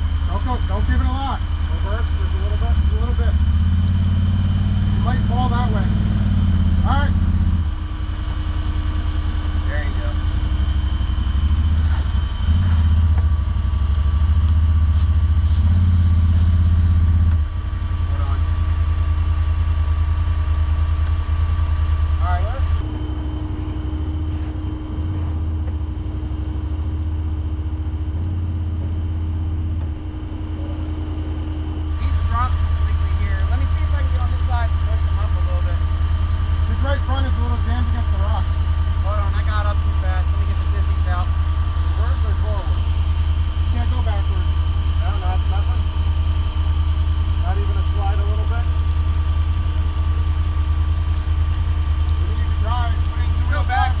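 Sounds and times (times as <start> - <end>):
utility vehicle engine idling: 0.0 - 54.0.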